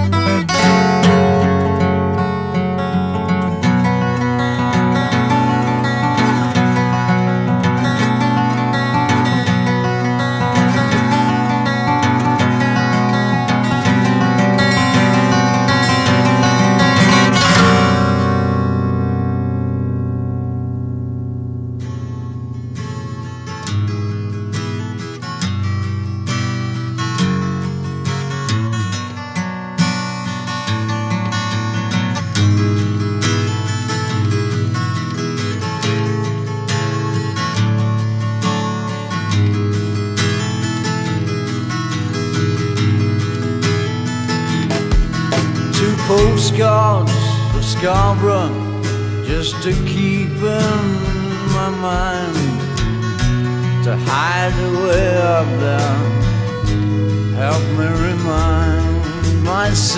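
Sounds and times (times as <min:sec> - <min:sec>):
picked acoustic guitar: 0:00.0 - 0:59.9
strummed acoustic guitar: 0:00.0 - 0:59.9.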